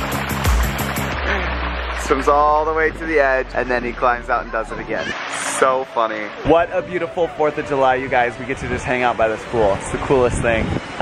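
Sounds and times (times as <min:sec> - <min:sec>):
music with steady beat: 0:00.0 - 0:01.3
pool water splashing: 0:00.0 - 0:11.0.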